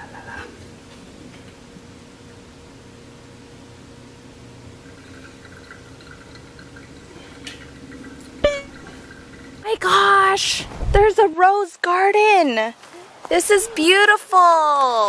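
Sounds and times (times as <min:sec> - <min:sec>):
water pouring onto coffee grounds: 0:04.8 - 0:09.8.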